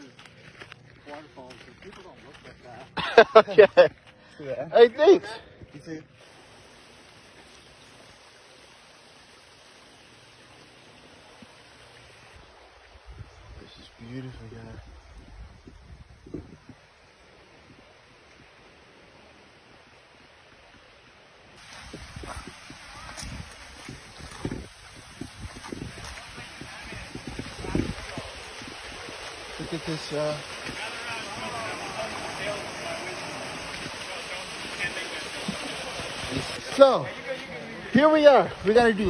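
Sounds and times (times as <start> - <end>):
creek water running over rocks: 0.0 - 39.0
wind buffeting microphone: 14.6 - 17.0, 21.6 - 29.8.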